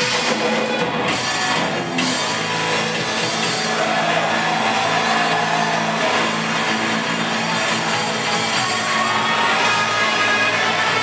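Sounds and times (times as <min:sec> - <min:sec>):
rock band playing loudly: 0:00.0 - 0:11.0
crowd cheering faintly: 0:00.6 - 0:11.0.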